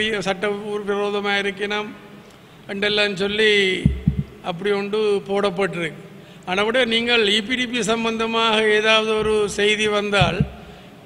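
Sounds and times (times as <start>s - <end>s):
man speaking: 2.7s - 10.6s
deep thuds on microphone: 3.8s - 4.3s, 10.2s - 10.6s.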